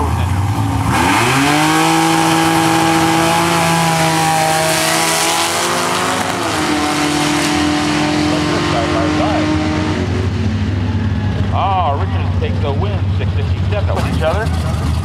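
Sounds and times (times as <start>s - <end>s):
drag car engines at full throttle: 0.0s - 15.0s.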